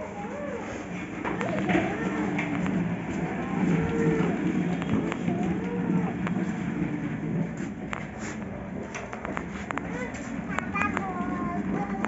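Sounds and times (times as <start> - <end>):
tricycle wheels rumbling on marble: 0.0 - 12.0.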